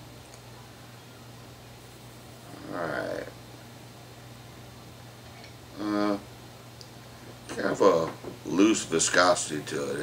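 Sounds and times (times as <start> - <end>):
low electrical hum: 0.0 - 10.0
man humming: 5.7 - 6.3
man murmuring: 5.8 - 6.3.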